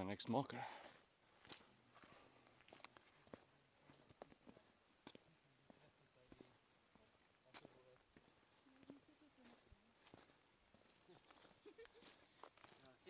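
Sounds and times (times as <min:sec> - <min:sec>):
footsteps on gravel: 0:00.2 - 0:13.0.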